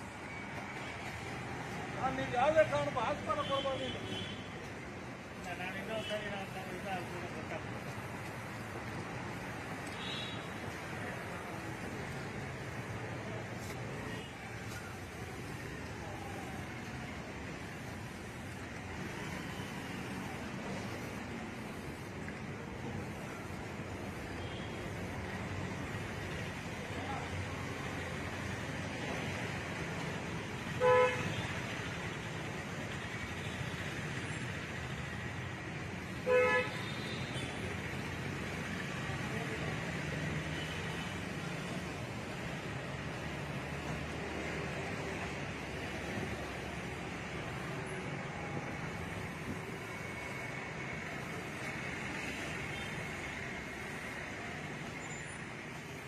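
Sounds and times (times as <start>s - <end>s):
street traffic noise: 0.0s - 56.0s
vehicle horn toot: 30.8s - 31.3s.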